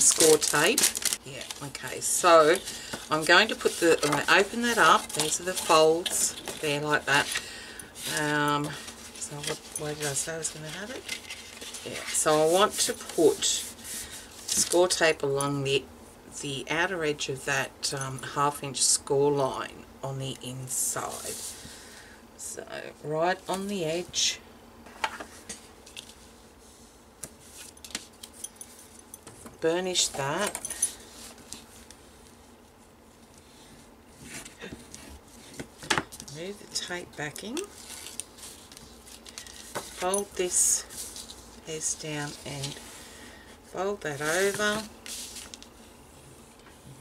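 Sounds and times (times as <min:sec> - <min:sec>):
cardstock rustling: 0:00.0 - 0:15.0, 0:44.2 - 0:45.7.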